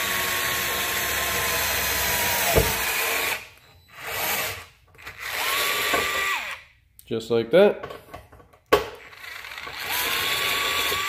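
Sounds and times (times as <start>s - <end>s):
cordless screwdriver motor whine: 9.1s - 11.0s.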